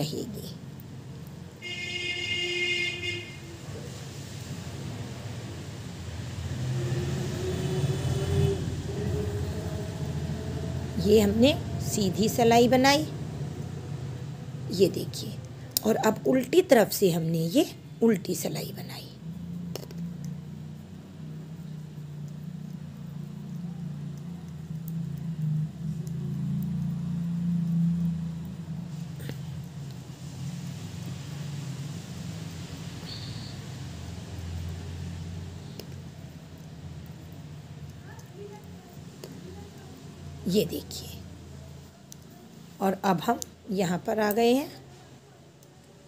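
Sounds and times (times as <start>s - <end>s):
road vehicle passing: 0.0s - 45.6s.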